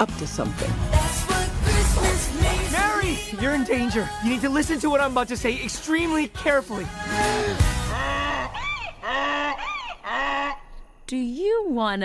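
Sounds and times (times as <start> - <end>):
cartoon donkey braying: 7.8 - 10.8.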